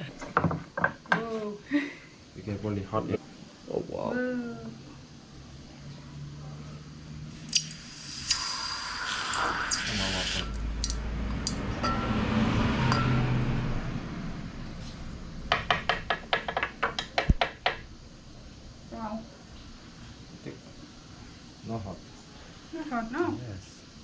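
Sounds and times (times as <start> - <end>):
hot metal hissing in water: 7.3 - 10.6.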